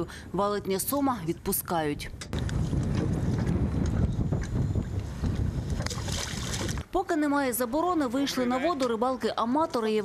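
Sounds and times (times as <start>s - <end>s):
wind buffeting microphone: 1.8s - 7.0s.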